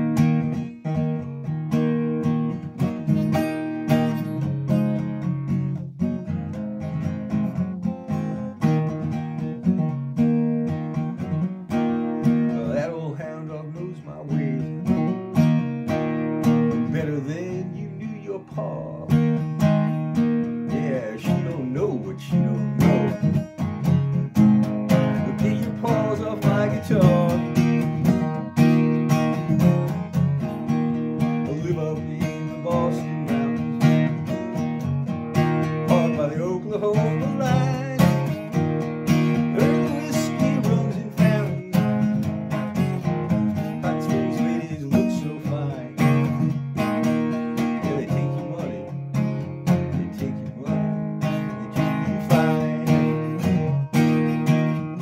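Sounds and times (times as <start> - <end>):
acoustic guitar strumming: 0.0 - 55.0
man's voice: 12.2 - 15.1, 16.8 - 19.4, 20.7 - 23.5, 25.1 - 28.3, 31.3 - 34.5, 35.8 - 38.5, 39.4 - 42.9, 43.6 - 53.8.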